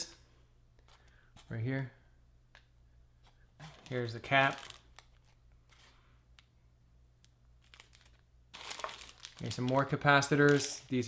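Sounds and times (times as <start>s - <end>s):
plastic bag crinkling: 3.6s - 5.3s, 7.6s - 11.0s.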